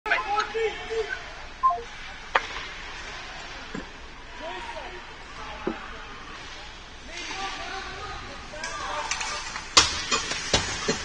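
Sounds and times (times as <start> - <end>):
arena background noise: 0.1 - 10.2.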